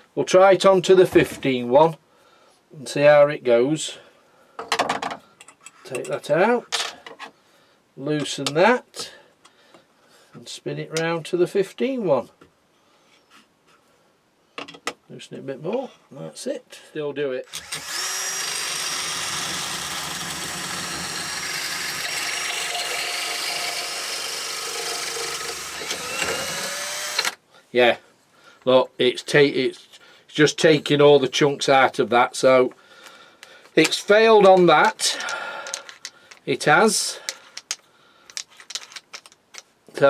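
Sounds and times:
cordless drill whining: 0:17.5 - 0:27.4
wood scraping being cut: 0:17.5 - 0:27.4
drill handling clicks and taps: 0:37.2 - 0:39.7.

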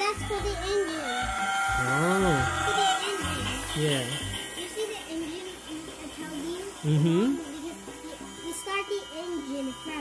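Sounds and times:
child's voice: 0:00.0 - 0:03.8, 0:04.6 - 0:10.0
faint steady tones: 0:00.0 - 0:10.0.

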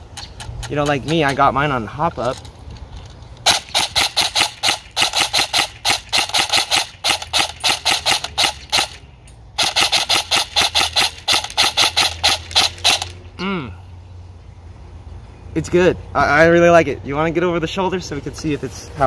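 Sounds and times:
airsoft rifle firing single shots: 0:03.5 - 0:09.0.

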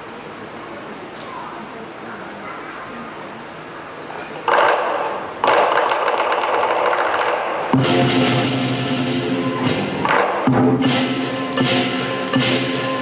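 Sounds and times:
low background murmur: 0:00.0 - 0:13.0
drum and gong beat: 0:04.5 - 0:13.0
cymbals rolling rapidly: 0:04.8 - 0:13.0.

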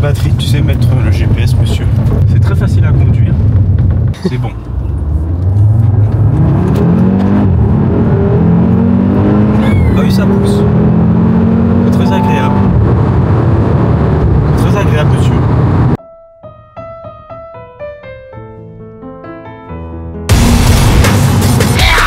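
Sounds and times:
car engine accelerating: 0:00.0 - 0:16.0.

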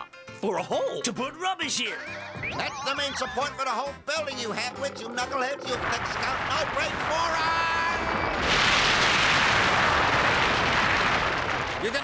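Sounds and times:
cartoon building collapse crash: 0:05.7 - 0:12.0.

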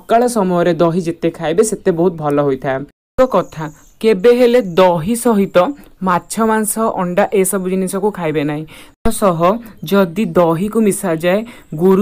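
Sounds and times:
person narrating: 0:00.0 - 0:12.0.

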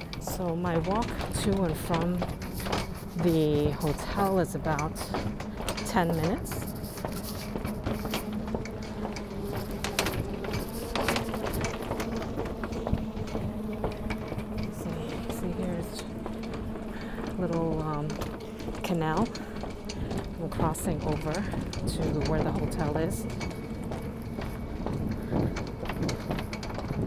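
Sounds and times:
low mechanical hum: 0:00.0 - 0:27.0.

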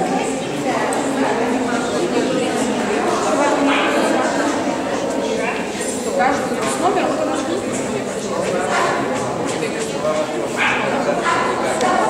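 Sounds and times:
crowd chatter: 0:00.0 - 0:12.0
dog barking: 0:10.6 - 0:11.7.

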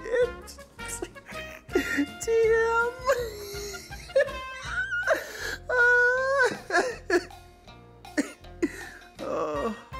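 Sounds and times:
person laughing and gasping: 0:01.0 - 0:02.2, 0:03.1 - 0:07.4, 0:08.1 - 0:09.9.

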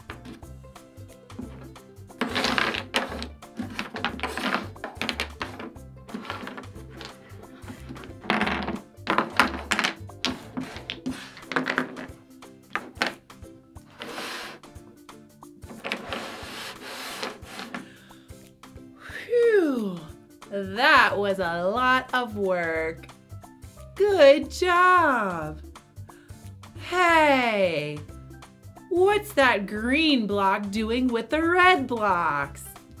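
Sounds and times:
background music: 0:00.0 - 0:33.0
wooden toy blocks clacking: 0:02.2 - 0:12.1.

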